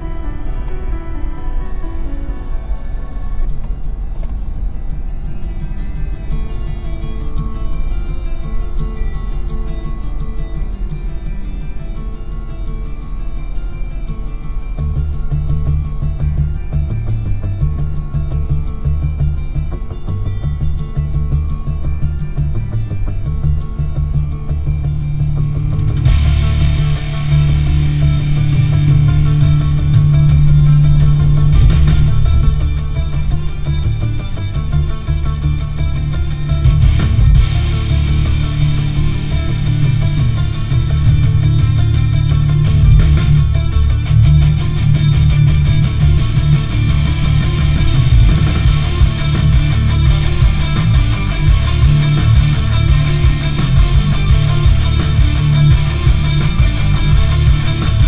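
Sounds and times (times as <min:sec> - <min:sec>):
rock music through car speakers: 0:03.4 - 0:58.0.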